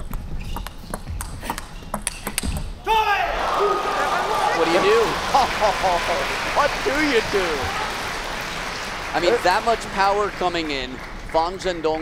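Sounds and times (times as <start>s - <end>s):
table tennis ball clicking: 0.0s - 2.6s
crowd cheering and shouting: 2.9s - 9.8s.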